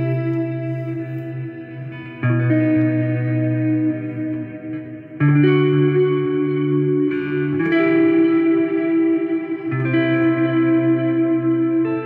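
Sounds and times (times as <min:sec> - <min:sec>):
electric guitar chords ringing: 0:00.0 - 0:12.0.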